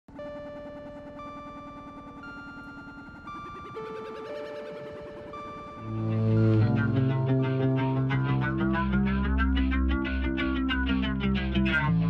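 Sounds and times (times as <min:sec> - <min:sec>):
music with long held notes: 0:00.2 - 0:12.0
fast-pulsing texture: 0:02.0 - 0:12.0.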